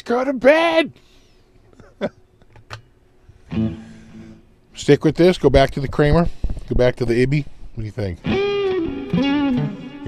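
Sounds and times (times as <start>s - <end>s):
electric guitar chord ringing: 3.5s - 4.5s, 8.2s - 10.0s.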